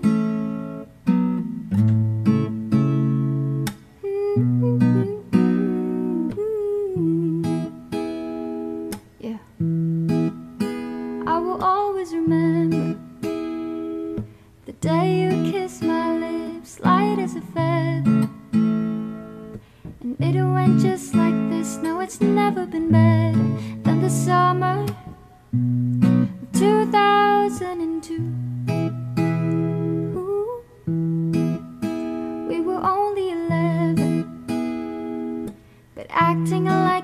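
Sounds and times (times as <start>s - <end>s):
acoustic guitar strumming: 0.0s - 37.0s
person singing: 4.0s - 7.7s, 11.3s - 13.0s, 13.8s - 18.3s, 20.0s - 25.2s, 26.5s - 28.4s, 32.5s - 34.2s, 36.0s - 37.0s.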